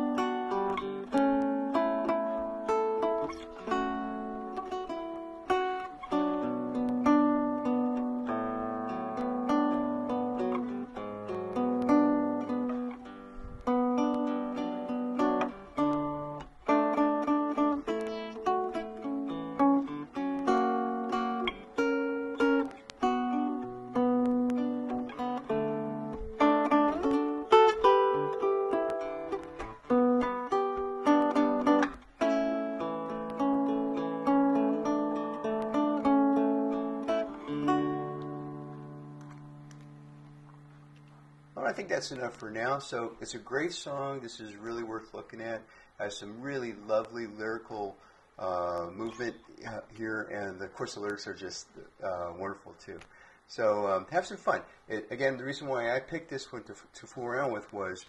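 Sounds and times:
fingerstyle acoustic guitar: 0.0s - 43.7s.

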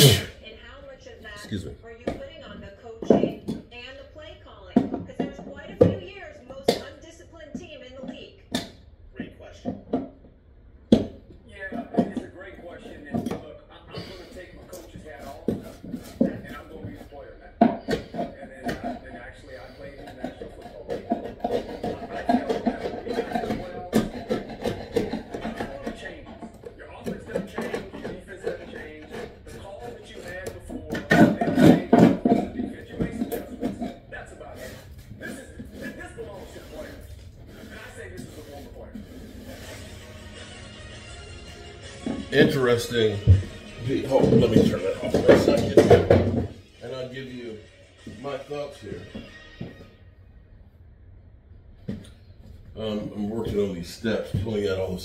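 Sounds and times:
speech from a device: 0.4s - 8.5s, 11.5s - 39.2s, 42.3s - 49.2s
music from a device: 39.8s - 42.3s.

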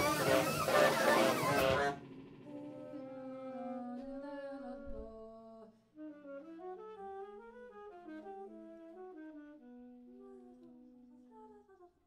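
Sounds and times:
ensemble holding sustained notes: 0.0s - 4.1s.

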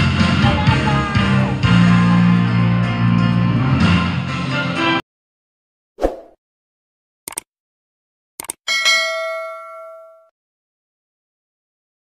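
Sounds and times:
notification bell ding: 8.7s - 10.3s.

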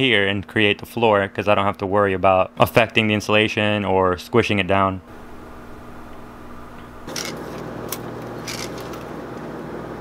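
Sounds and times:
steady low hum: 5.0s - 10.0s.

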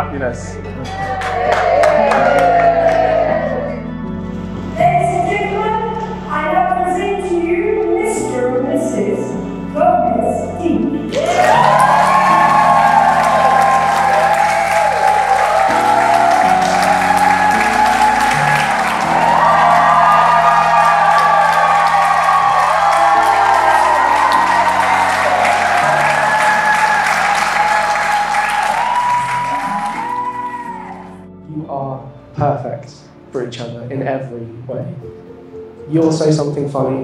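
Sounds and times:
background music with slow chords: 0.0s - 37.0s
congregation applauding: 0.8s - 3.8s, 11.0s - 31.2s.

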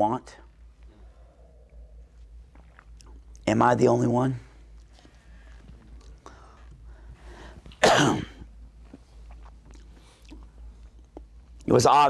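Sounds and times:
man sneezing: 7.8s - 8.4s.

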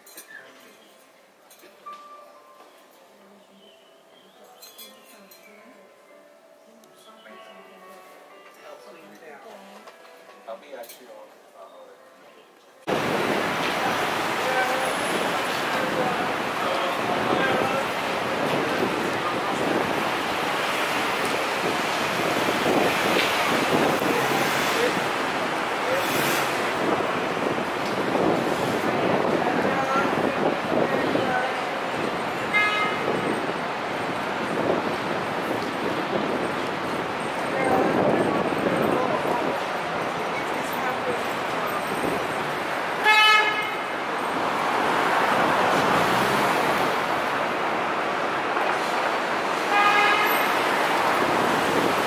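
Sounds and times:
city street traffic noise: 0.0s - 52.0s
vehicle horn honking: 32.4s - 33.3s, 43.0s - 44.0s, 49.7s - 50.6s.

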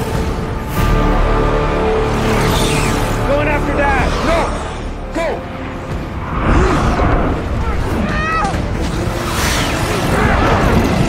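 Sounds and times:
low rushing wind: 3.9s - 11.0s.

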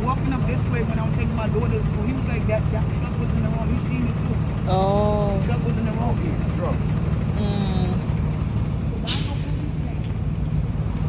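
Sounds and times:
heavy vehicle engine idling: 0.0s - 11.0s
air brakes hissing: 9.0s - 9.7s.

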